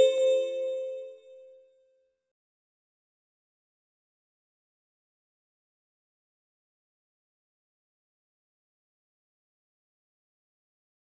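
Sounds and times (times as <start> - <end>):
bell-like musical chime: 0.0 - 1.3.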